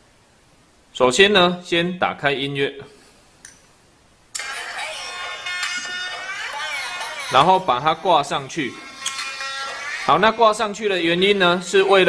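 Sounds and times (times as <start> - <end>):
music from phone loudspeaker: 4.4 - 12.0.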